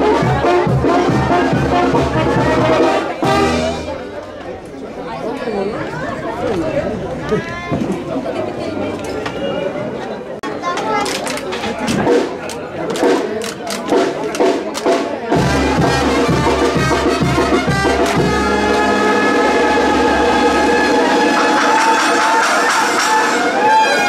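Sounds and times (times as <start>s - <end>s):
brass band playing: 0.0s - 4.1s, 13.9s - 24.0s
crowd chatter: 0.0s - 24.0s.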